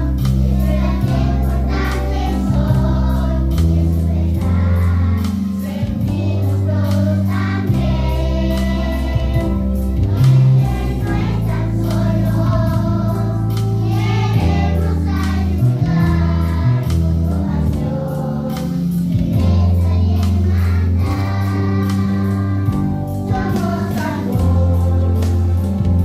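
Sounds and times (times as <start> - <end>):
children singing in unison: 0.0 - 26.0
instrumental accompaniment: 0.0 - 26.0.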